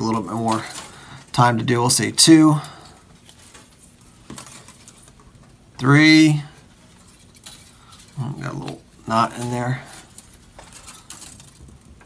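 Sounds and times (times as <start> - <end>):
wire clicking and rustling: 0.0 - 12.0.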